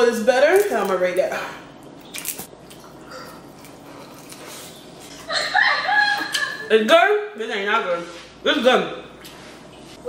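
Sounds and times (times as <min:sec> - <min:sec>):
quiet chewing: 0:02.1 - 0:05.3
woman's voice: 0:06.7 - 0:09.0.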